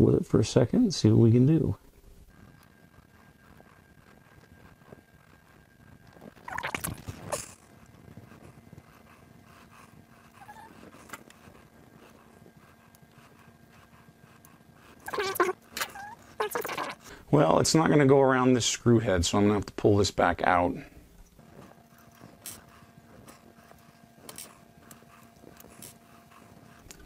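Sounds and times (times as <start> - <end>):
faint steady hum: 0.0 - 27.0
fingers rubbing rubber belt: 2.3 - 17.2, 21.4 - 27.0.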